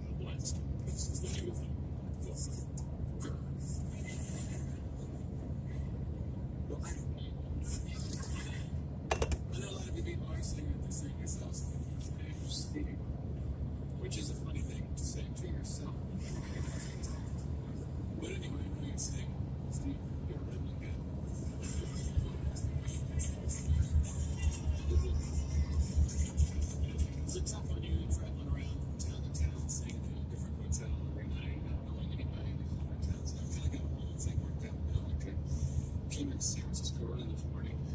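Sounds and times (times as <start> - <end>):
faint speech from car audio: 0.0 - 37.9.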